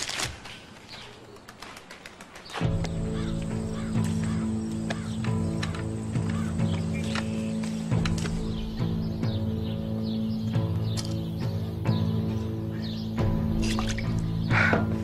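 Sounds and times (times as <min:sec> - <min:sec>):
bird chirps: 0:02.4 - 0:15.0
film score with low chords: 0:02.6 - 0:15.0.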